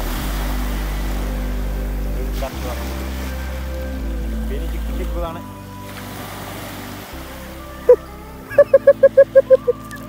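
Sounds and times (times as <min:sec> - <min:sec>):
surf washing on beach: 0:00.0 - 0:07.9
low rumble: 0:00.0 - 0:10.0.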